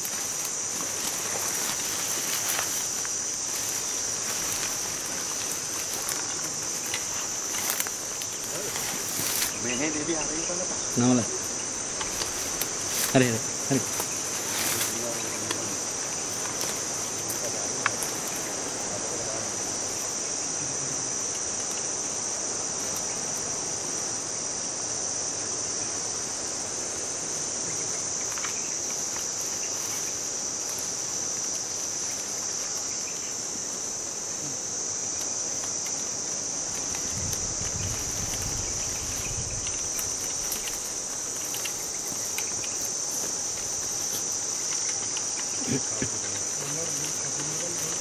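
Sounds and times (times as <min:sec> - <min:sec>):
insects chirring: 0:00.0 - 0:48.0.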